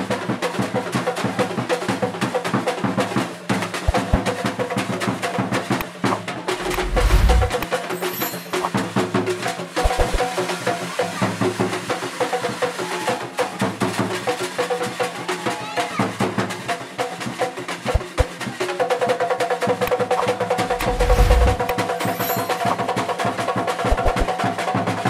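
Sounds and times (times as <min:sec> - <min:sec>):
hand drums fast rhythm: 0:03.8 - 0:04.5, 0:09.8 - 0:10.3, 0:17.8 - 0:18.7, 0:19.8 - 0:23.0, 0:23.6 - 0:25.0.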